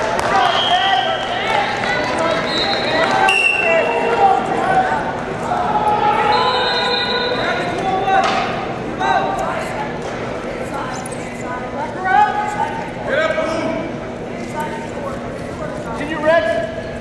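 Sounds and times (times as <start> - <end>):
indistinct voices: 0.0 - 17.0
high whistle tones: 2.3 - 3.8, 6.3 - 7.4.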